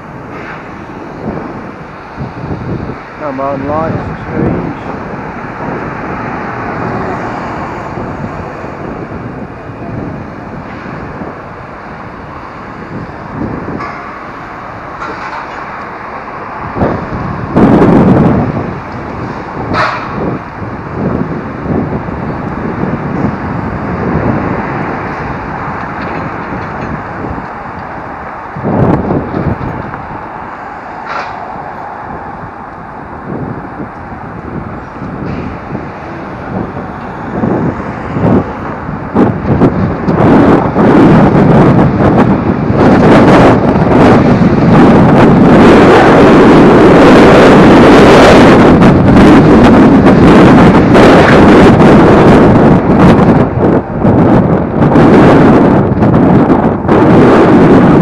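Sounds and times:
scooter road noise: 0.0s - 58.0s
wind rushing over microphone: 0.0s - 58.0s.

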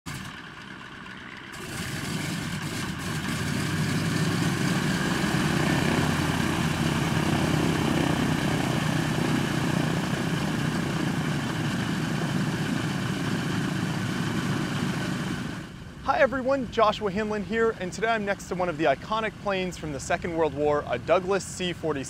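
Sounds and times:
propeller plane engines taxiing: 0.1s - 22.0s.

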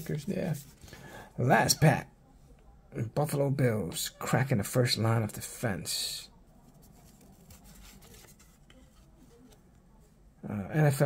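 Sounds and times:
cardboard cards rustling: 6.6s - 9.6s.

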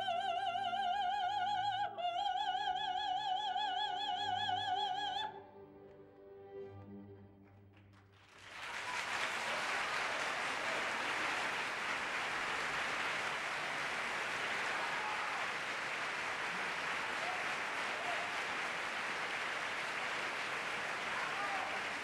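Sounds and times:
opera singing: 0.0s - 5.5s
audience applauding: 7.4s - 22.0s.

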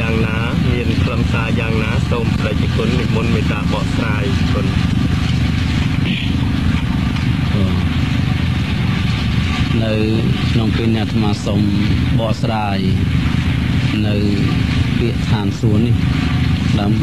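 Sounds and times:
man speaking: 0.0s - 4.8s, 7.5s - 8.0s, 9.7s - 13.2s, 13.8s - 16.0s, 16.6s - 17.0s
steady low rumble: 0.0s - 17.0s.

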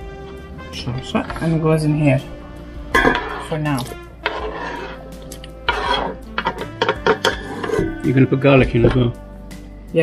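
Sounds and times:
knife and board knocking pot: 3.0s - 5.0s, 5.6s - 9.2s
knife scraping cutting board: 3.0s - 8.0s.

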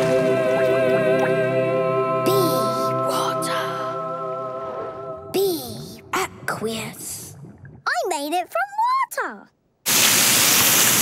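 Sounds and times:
cartoon water gush: 9.8s - 11.0s.

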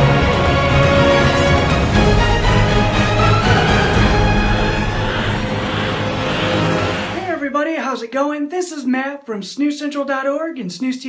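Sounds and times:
intro theme music: 0.0s - 7.6s
hissing whoosh sweep: 1.9s - 7.4s.

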